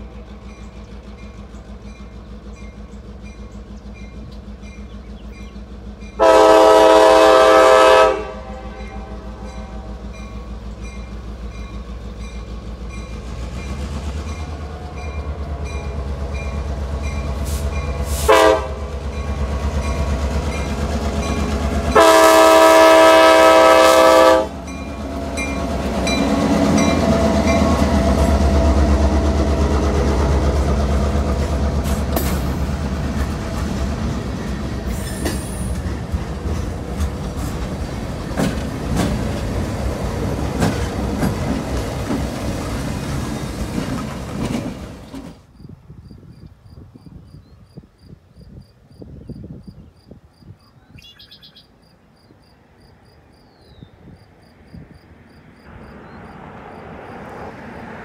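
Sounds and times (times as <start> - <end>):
diesel engine rumble: 0.0 - 7.6, 8.4 - 45.1
locomotive air horn: 6.2 - 10.1, 17.5 - 19.0, 21.9 - 24.7.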